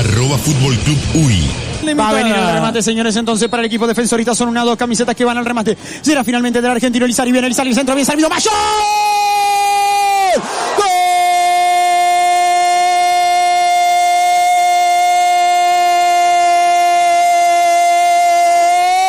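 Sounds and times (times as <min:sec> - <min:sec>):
quick breath: 0:05.8 - 0:06.0, 0:10.4 - 0:10.8.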